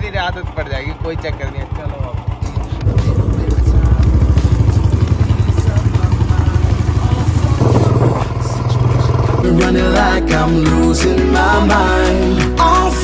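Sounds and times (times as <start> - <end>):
motorcycle engine thumping: 0.0 - 9.8.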